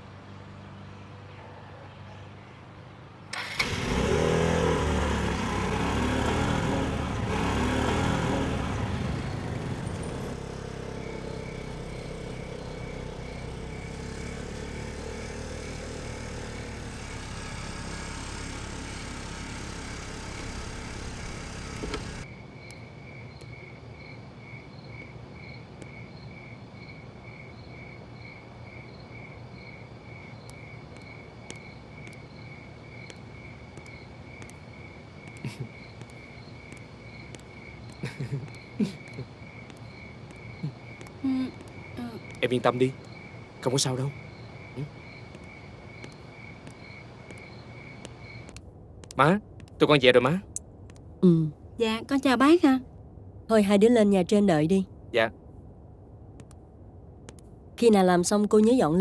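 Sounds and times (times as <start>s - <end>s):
motorbike engine running: 3.6s - 22.3s
insects chirping: 7.3s - 51.1s.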